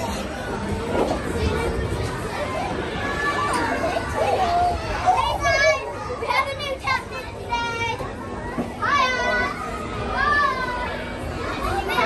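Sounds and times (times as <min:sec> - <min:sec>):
children calling and squealing: 0:00.0 - 0:12.0
children playing: 0:00.0 - 0:12.0.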